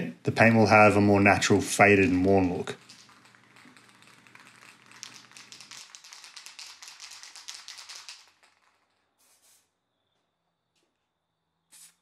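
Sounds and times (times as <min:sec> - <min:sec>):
spray can rattling: 0:02.0 - 0:09.7
spray hiss: 0:09.2 - 0:09.7, 0:11.7 - 0:12.0.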